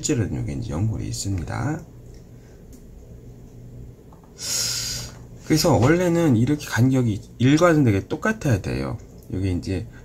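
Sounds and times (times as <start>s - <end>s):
man speaking: 0.0s - 1.9s, 5.5s - 9.9s
steady low hum: 0.0s - 10.0s
man breathing in: 4.4s - 5.2s.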